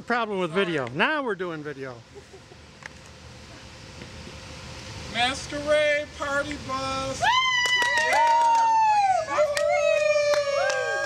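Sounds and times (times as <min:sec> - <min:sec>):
people howling woo calls: 0:07.2 - 0:11.0.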